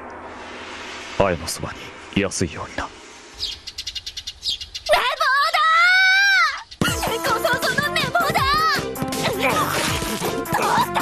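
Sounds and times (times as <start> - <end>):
small birds chirping: 3.3 - 8.1
girl shouting: 4.9 - 9.9.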